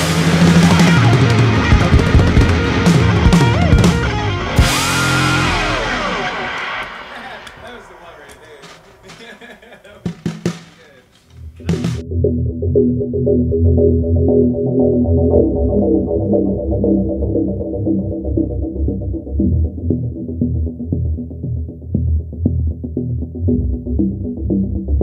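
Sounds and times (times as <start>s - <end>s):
background music with drums: 0.0s - 5.4s, 9.9s - 11.0s, 11.6s - 12.0s.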